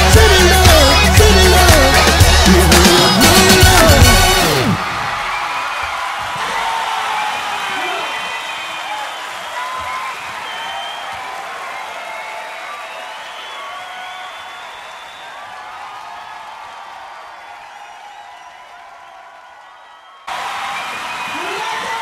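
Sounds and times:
crowd applauding and cheering: 0.0s - 22.0s
people whooping: 0.4s - 22.0s.

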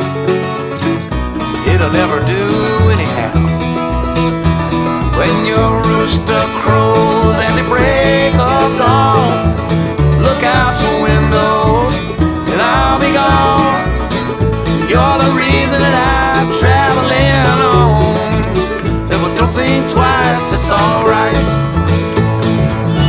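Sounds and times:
lead melody with bending notes: 0.0s - 23.0s
steady bass line: 0.0s - 23.0s
strummed acoustic guitar: 0.0s - 23.0s.

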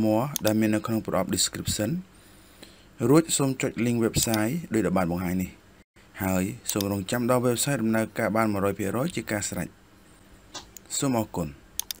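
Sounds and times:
sharp clicks: 6.7s - 7.0s, 11.8s - 12.0s.

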